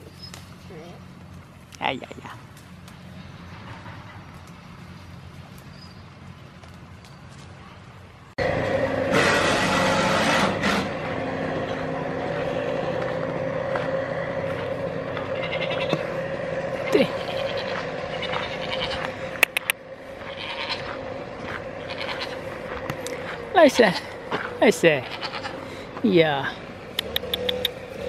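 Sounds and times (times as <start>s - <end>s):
loud machine drone: 8.4s - 26.0s
goat bleating: 14.5s - 19.6s, 20.2s - 21.0s, 21.8s - 22.6s, 24.9s - 25.6s
sharp clicks: 19.4s - 19.8s, 26.9s - 27.8s.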